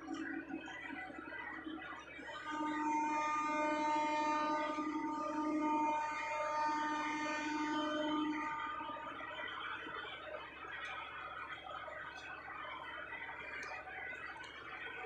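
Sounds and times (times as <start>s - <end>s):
boat horn blast: 2.5s - 9.0s.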